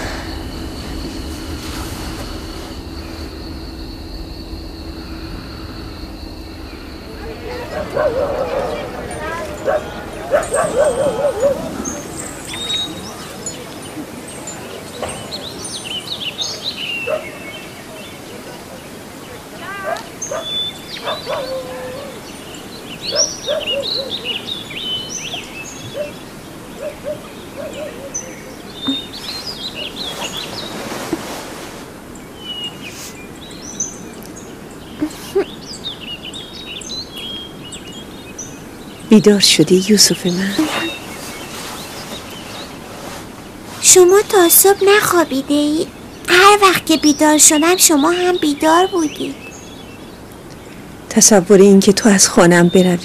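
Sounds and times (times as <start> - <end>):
birds chirping: 0.0 - 53.0
soft steady background noise: 0.0 - 53.0.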